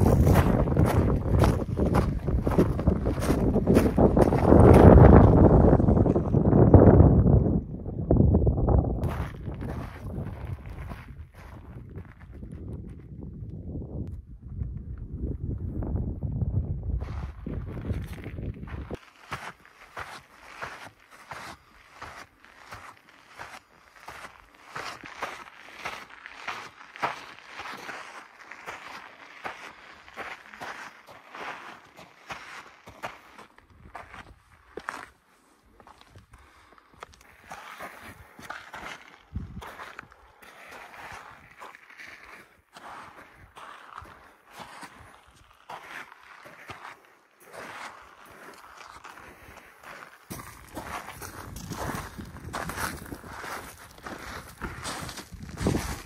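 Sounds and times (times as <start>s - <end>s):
footsteps on gravel: 0.0s - 6.6s, 9.0s - 13.1s, 17.0s - 56.0s
wind buffeting microphone: 0.0s - 19.0s, 39.2s - 40.1s, 50.3s - 56.0s.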